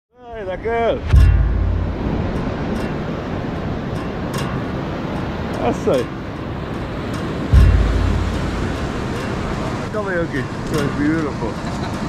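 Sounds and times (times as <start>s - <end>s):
surf breaking on beach: 0.4s - 12.0s
wind on microphone: 0.8s - 11.0s.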